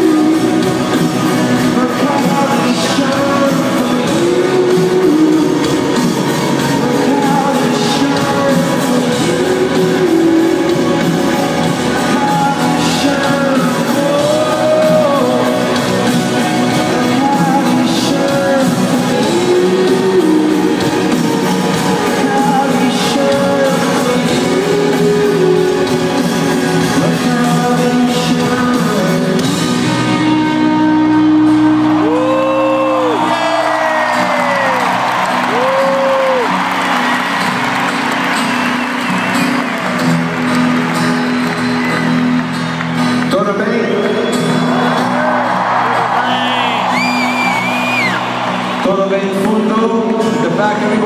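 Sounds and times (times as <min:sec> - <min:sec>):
person singing long notes: 0:00.0 - 0:36.6
crowd cheering and singing along: 0:00.0 - 0:51.0
rock band playing live: 0:00.0 - 0:51.0.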